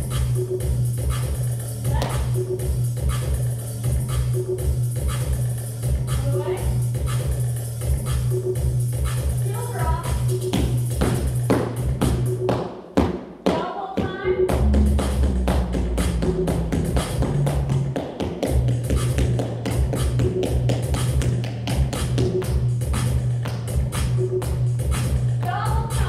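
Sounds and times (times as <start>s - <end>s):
pop music with bass beat: 0.0s - 26.0s.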